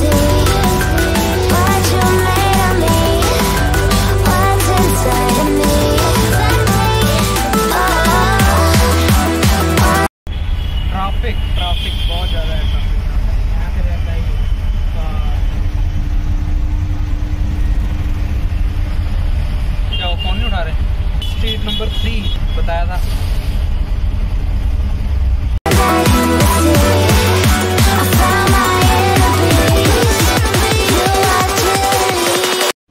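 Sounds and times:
vehicle horns honking: 0:10.3 - 0:13.1, 0:19.8 - 0:22.8
auto-rickshaw engine rumble: 0:10.3 - 0:25.7.

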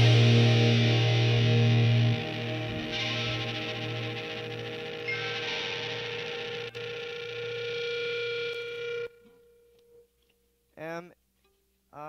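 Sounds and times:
rock music with electric guitar: 0:00.0 - 0:09.1.

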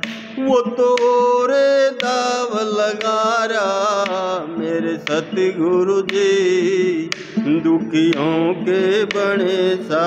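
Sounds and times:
single string plucked: 0:00.0 - 0:10.0.

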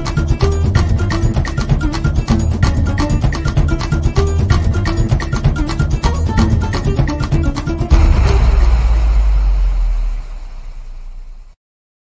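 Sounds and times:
jingle hit with deep bass note: 0:07.9 - 0:11.5.

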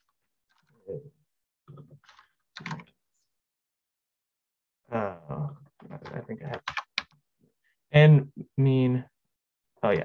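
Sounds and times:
computer keyboard typing: 0:06.5 - 0:07.1.

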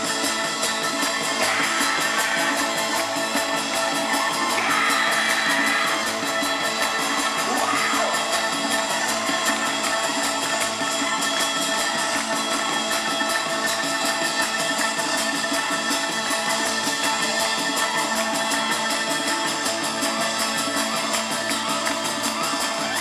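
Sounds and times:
live band music through pa: 0:00.0 - 0:23.0.

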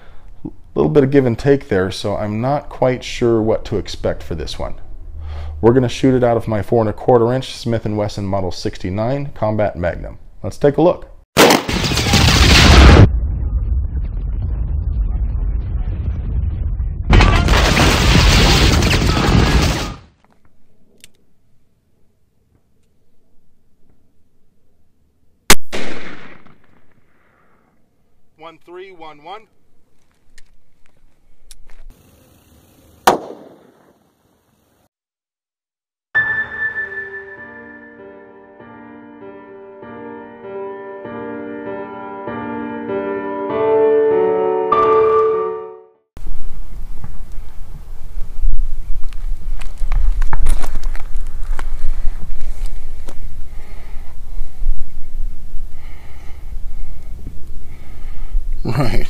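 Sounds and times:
gunshot echo ringing: 0:11.4 - 0:11.9, 0:25.5 - 0:27.0, 0:33.1 - 0:34.0
revolver gunshot: 0:11.4 - 0:13.1, 0:25.5 - 0:27.0, 0:33.1 - 0:34.0.

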